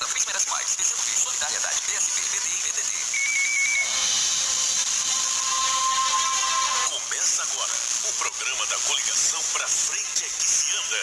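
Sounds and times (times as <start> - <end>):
constant high hiss: 0.0 - 11.0
warbling electronic beep: 3.1 - 6.9
steady electronic tone: 3.2 - 6.9.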